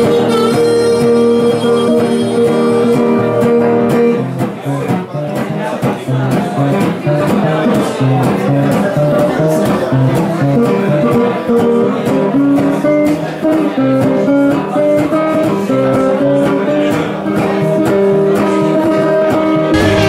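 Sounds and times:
resonator guitar playing blues: 0:00.0 - 0:20.0.

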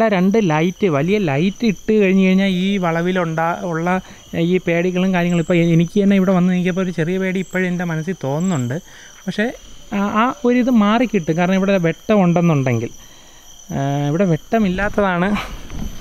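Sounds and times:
man talking: 0:00.0 - 0:13.0, 0:13.7 - 0:15.5
crickets trilling: 0:00.0 - 0:16.0.

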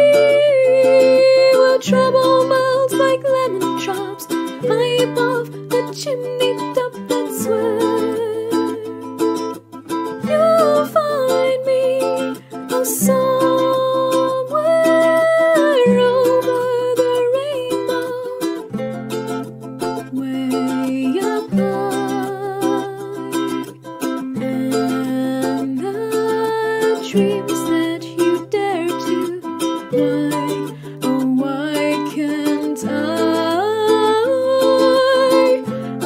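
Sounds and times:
person singing: 0:00.0 - 0:18.8, 0:19.8 - 0:36.0
ukulele chords: 0:00.0 - 0:36.0.

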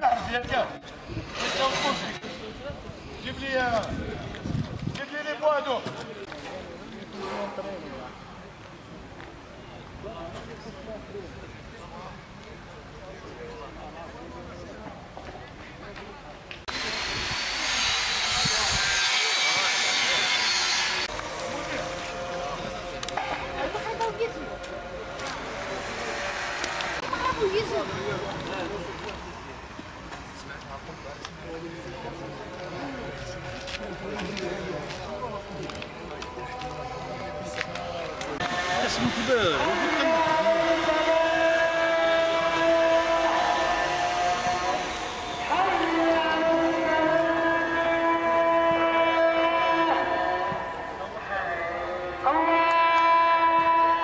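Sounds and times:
men talking and calling out: 0:09.8 - 0:54.0.

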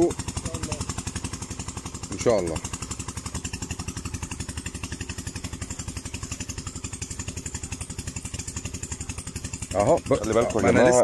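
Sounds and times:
small engine chugging: 0:00.0 - 0:11.0.

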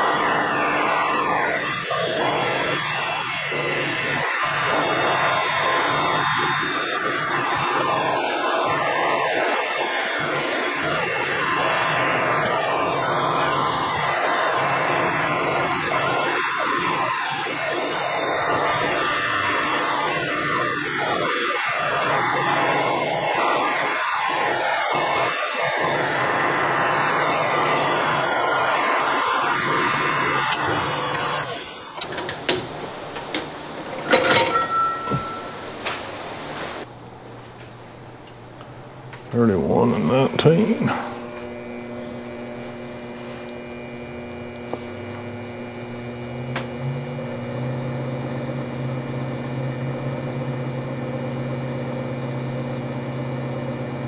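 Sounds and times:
metal lathe machining: 0:00.0 - 0:36.9, 0:37.7 - 0:54.0
motor hum: 0:25.6 - 0:54.0.

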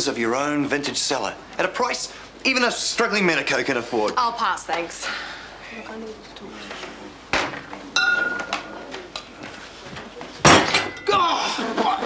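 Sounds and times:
glass bottle clinking on table: 0:08.0 - 0:08.6.

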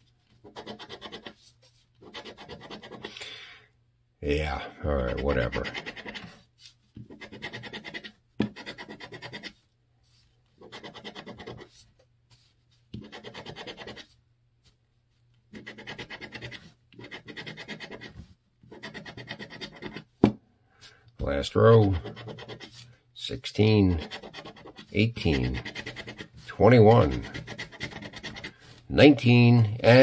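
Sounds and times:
scratcher scraping lottery ticket: 0:23.6 - 0:28.6.

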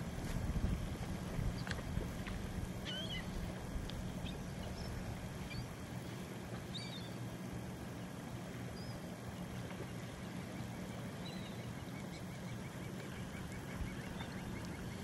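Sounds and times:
steady low rumble: 0:00.0 - 0:15.0
high bird calls: 0:02.8 - 0:03.4.

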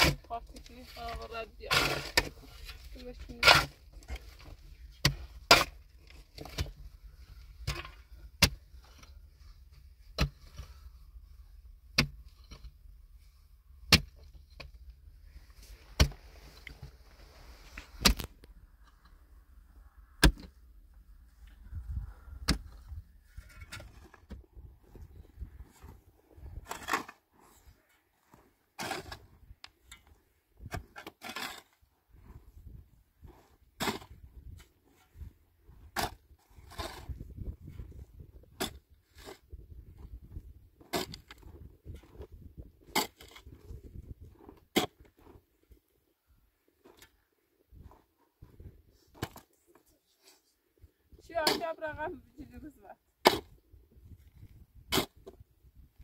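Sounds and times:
pickaxe striking stony earth: 0:00.0 - 0:00.3, 0:01.1 - 0:06.8, 0:07.6 - 0:08.7, 0:10.1 - 0:10.8, 0:11.9 - 0:12.7, 0:13.9 - 0:14.8, 0:15.9 - 0:16.2, 0:17.8 - 0:18.5, 0:20.2 - 0:20.6, 0:22.4 - 0:24.4, 0:26.6 - 0:27.2, 0:28.8 - 0:29.4, 0:30.0 - 0:31.7, 0:33.2 - 0:34.6, 0:35.8 - 0:45.4, 0:49.1 - 0:49.5, 0:51.3 - 0:51.8, 0:53.2 - 0:53.6, 0:54.9 - 0:55.4
loosened soil scraping and falling: 0:00.0 - 0:45.9.

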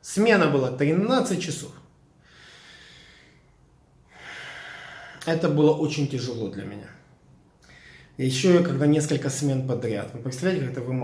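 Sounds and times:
man breathing in through nose: 0:02.2 - 0:05.2, 0:07.6 - 0:08.2.

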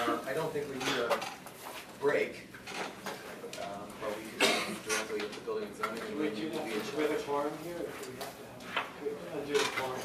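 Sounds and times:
low talk among people: 0:03.2 - 0:10.0.

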